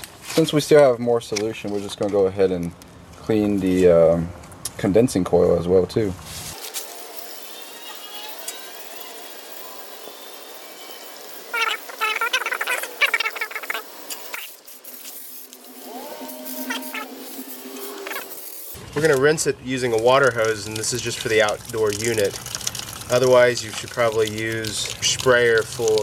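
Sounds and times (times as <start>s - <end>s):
spray hissing: 6.5s - 18.8s
sped-up squeaky voices: 11.4s - 14.6s, 15.9s - 17.2s.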